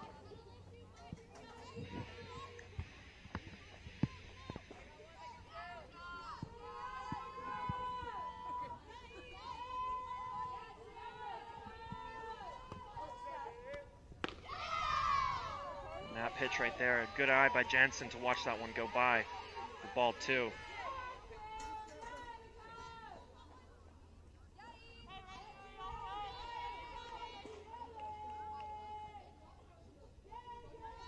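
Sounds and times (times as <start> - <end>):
distant voices calling and chanting: 0.0 - 31.0.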